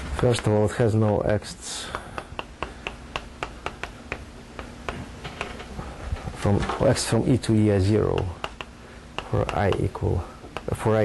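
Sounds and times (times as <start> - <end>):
chalk tapping on a blackboard: 1.8 - 5.6, 8.0 - 10.9.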